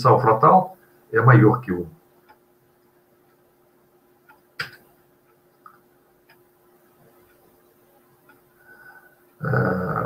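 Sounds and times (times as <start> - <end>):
man's drawn-out umm: 9.4 - 10.0.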